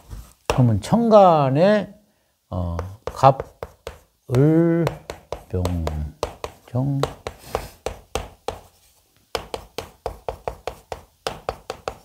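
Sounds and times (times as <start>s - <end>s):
chalk tapping on chalkboard: 0.0s - 0.7s, 2.7s - 12.0s.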